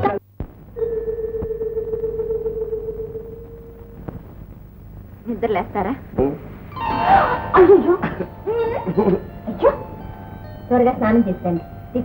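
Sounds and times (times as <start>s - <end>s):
film soundtrack hum and hiss: 0.0s - 12.0s
steady tone: 0.8s - 5.0s.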